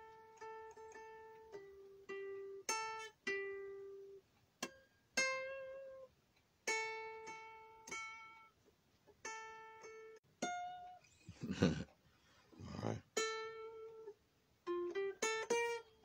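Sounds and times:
guitar picking slow blues notes: 0.0s - 8.5s, 12.6s - 16.0s.

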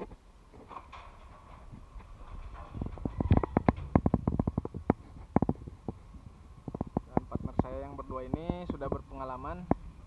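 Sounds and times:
sharp clicks and knocks: 0.0s - 6.0s, 6.7s - 9.9s.

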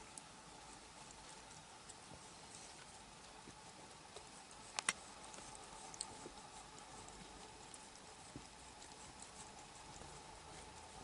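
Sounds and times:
faint steady hum: 0.0s - 11.0s
soft clicks from cat: 4.1s - 6.3s.

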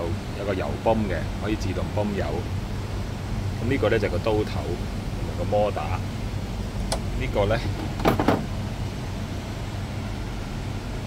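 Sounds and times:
plastic cover knocking into place: 8.0s - 8.5s.

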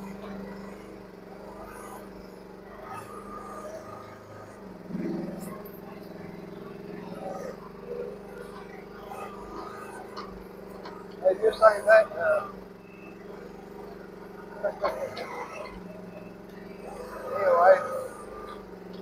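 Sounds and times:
mini excavator engine running: 0.0s - 19.0s.

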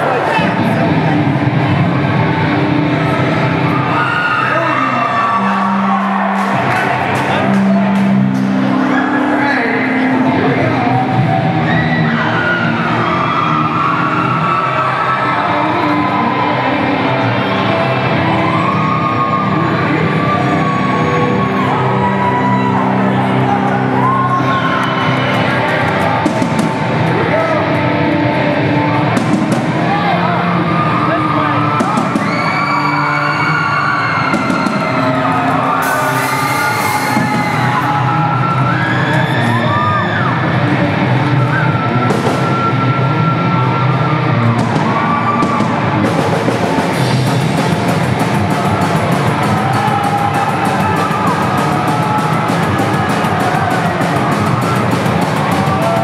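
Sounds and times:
audience cheering and yelling: 0.0s - 56.0s
bass guitar: 0.0s - 56.0s
distorted electric guitars: 0.0s - 56.0s
drums: 0.0s - 56.0s.

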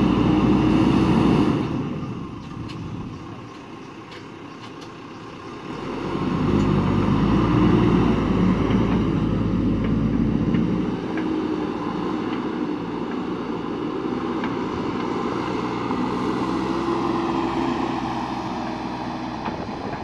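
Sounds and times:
diesel engine running: 0.0s - 20.0s.

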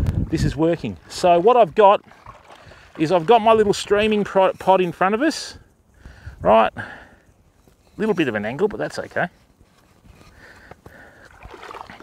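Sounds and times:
small waves lapping: 0.8s - 4.3s, 10.9s - 12.0s.

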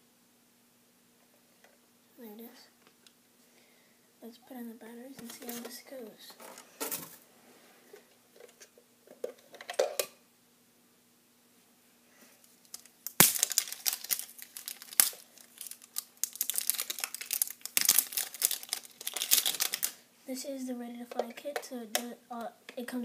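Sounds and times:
plastic packaging crinkling: 12.5s - 20.0s.

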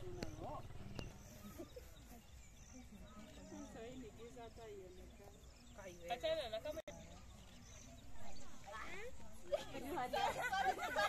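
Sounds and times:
women talking and exclaiming: 0.0s - 11.0s.

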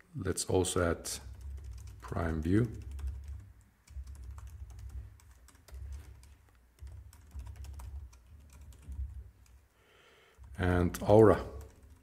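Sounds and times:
computer keyboard typing: 1.2s - 9.7s, 10.3s - 12.0s.

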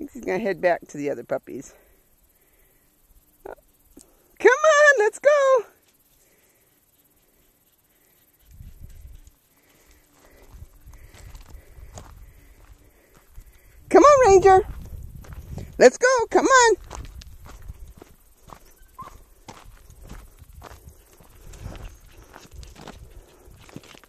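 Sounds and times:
man calling a dog: 4.4s - 5.7s, 13.9s - 14.7s, 15.8s - 16.8s
footsteps on gravel: 9.8s - 24.0s.

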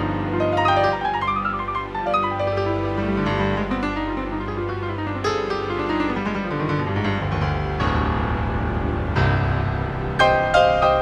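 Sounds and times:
piano ballad: 0.0s - 11.0s.

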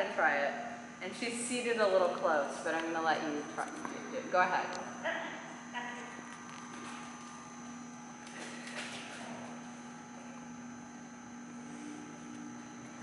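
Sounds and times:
faint high whine: 0.0s - 13.0s.

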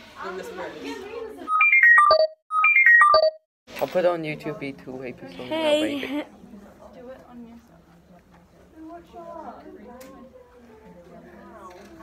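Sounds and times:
short electronic tune: 1.5s - 3.4s.

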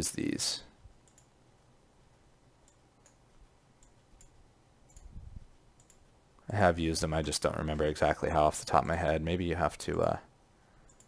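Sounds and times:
computer mouse clicks: 1.0s - 1.3s, 2.6s - 3.2s, 3.8s - 5.2s, 5.8s - 6.1s.

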